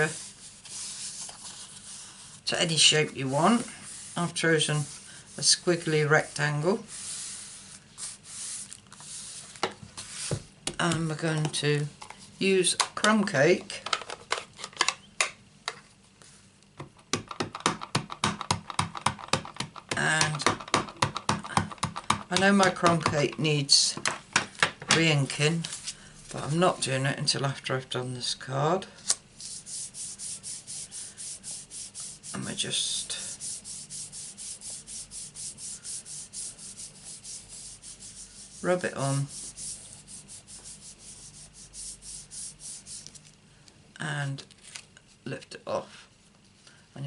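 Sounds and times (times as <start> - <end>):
hands rubbing over paper: 0.0 - 10.4, 29.4 - 43.3.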